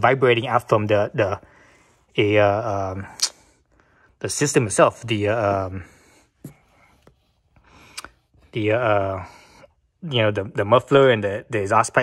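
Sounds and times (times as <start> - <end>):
mouth clicks: 3.1 - 3.5.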